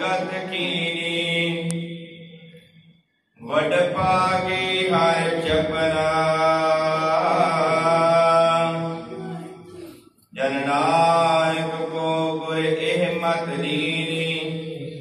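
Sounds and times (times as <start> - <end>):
man chanting into a microphone: 0.0 - 2.6, 3.4 - 15.0.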